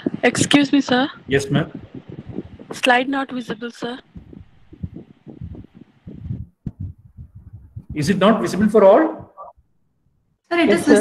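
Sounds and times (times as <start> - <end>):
soft low thumps and knocks: 0.0 - 9.7.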